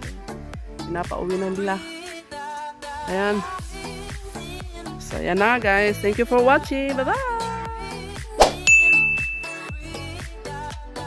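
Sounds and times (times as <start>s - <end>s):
background music with beat: 0.0s - 11.0s
bright ding sound effect: 8.6s - 9.8s.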